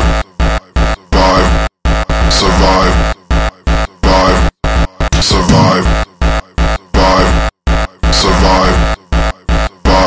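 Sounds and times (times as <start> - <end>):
distorted hardcore electronic music: 0.0 - 10.0.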